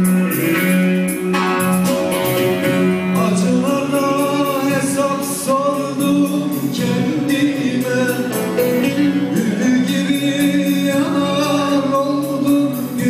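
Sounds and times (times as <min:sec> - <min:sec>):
amplified band with keyboards: 0:00.0 - 0:13.0
plucked electric string instrument: 0:00.0 - 0:13.0
man singing: 0:03.0 - 0:13.0.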